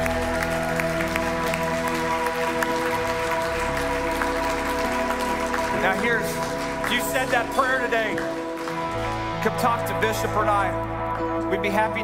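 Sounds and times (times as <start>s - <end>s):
background music of held chords: 0.0s - 12.0s
congregation applauding: 0.0s - 12.0s.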